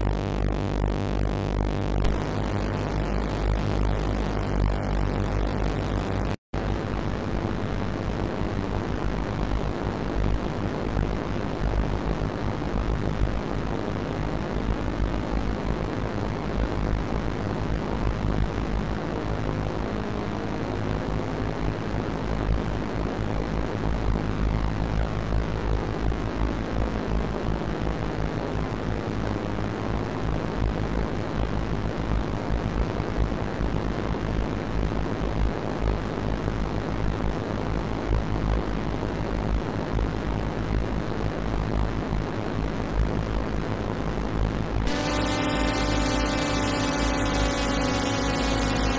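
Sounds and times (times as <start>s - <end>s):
synthesizer low drone: 0.0s - 10.4s, 44.8s - 48.9s
synthesizer tones sliding in pitch: 44.9s - 48.9s.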